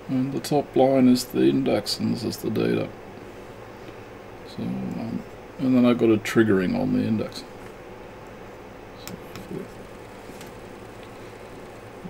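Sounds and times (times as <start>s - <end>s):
electronics fan hum: 0.0s - 12.0s.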